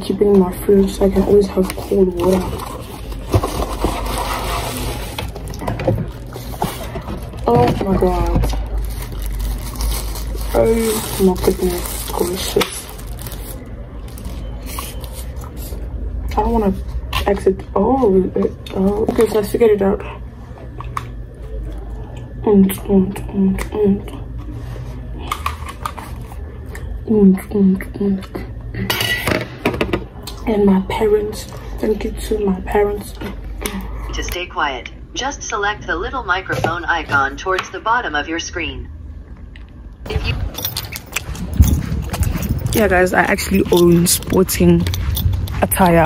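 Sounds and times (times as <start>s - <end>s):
low steady hum: 0.0s - 46.0s
paper and plastic rustling: 1.0s - 15.9s
headphones clicking and rustling: 40.4s - 46.0s.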